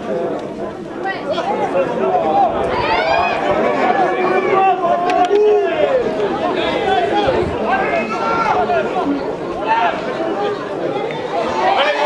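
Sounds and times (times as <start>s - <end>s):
voices shouting over one another: 1.0s - 12.0s.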